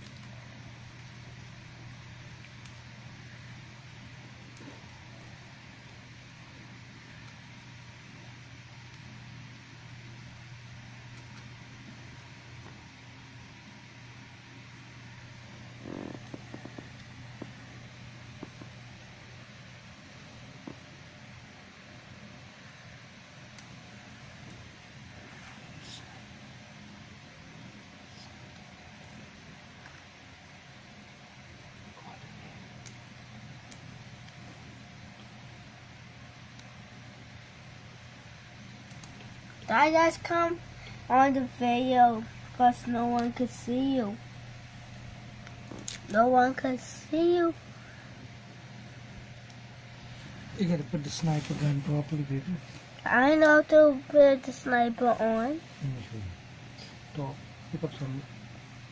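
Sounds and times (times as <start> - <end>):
steady low hum: 0.0 - 58.9.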